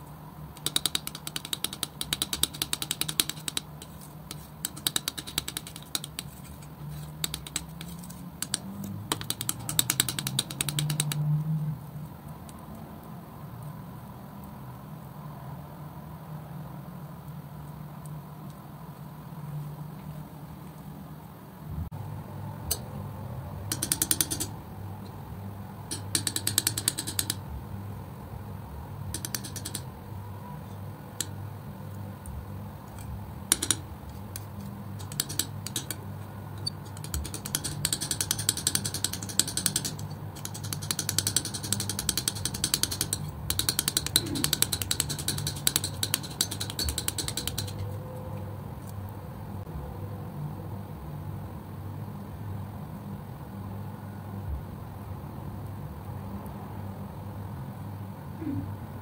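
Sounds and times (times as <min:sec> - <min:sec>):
palette knife scraping paint: 0:00.6 - 0:11.1, 0:33.0 - 0:36.0, 0:36.6 - 0:47.9
steady low hum: 0:21.0 - 0:59.0.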